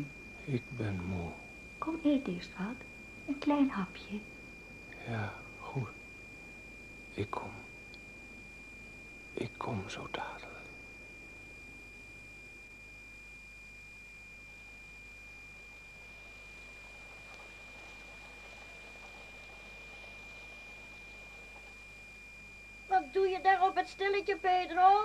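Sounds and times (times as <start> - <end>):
recording hiss: 0.0 - 8.4, 15.9 - 22.0
high-pitched whine: 0.0 - 25.0.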